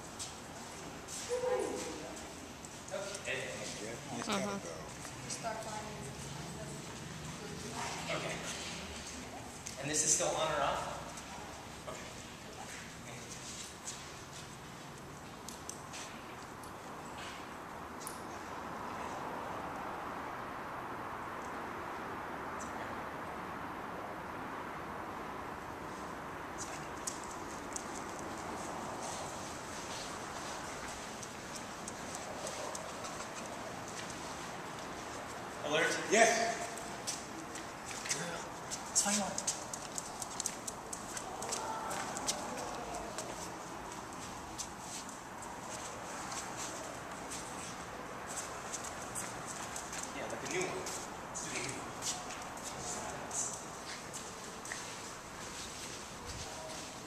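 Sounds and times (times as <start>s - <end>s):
steady background hiss: 0.0s - 57.0s
dog claws clicking on concrete: 26.6s - 28.6s, 31.1s - 34.2s, 36.6s - 44.0s
faint voices: 41.0s - 43.9s.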